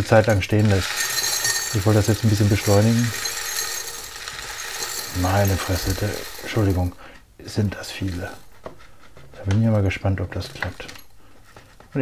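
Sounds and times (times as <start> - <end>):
crystals pouring onto glass: 0.0 - 7.0, 7.8 - 8.5, 10.3 - 11.1.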